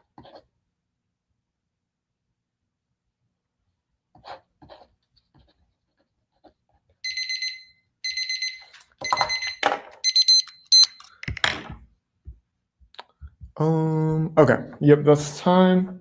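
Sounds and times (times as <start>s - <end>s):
electronic timer alarm beeping: 7.0s - 11.1s.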